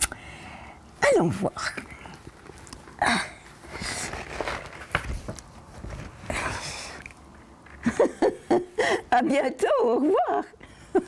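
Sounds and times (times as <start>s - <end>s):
storybook pages turning: 3.5s - 6.6s.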